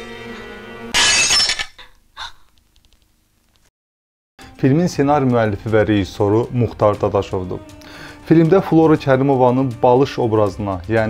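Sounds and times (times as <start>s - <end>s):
glass shattering: 0.9s - 1.8s
film score music: 4.4s - 11.0s.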